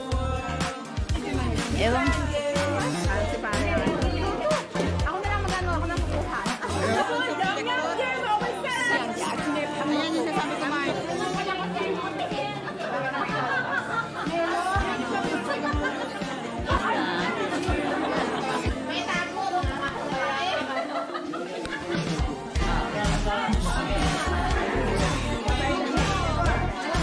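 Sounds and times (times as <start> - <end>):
people chattering: 0.0 - 27.0
pop song with steady beat: 0.0 - 27.0.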